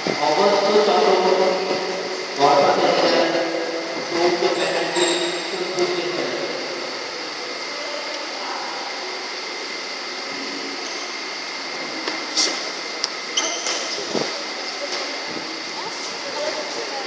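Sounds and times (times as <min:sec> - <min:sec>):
sports hall background hum: 0:00.0 - 0:17.0
faint voices: 0:00.1 - 0:17.0.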